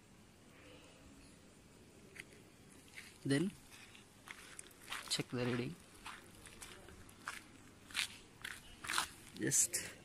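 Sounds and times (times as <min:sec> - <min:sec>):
footsteps crunching on stony soil: 0:02.1 - 0:09.6.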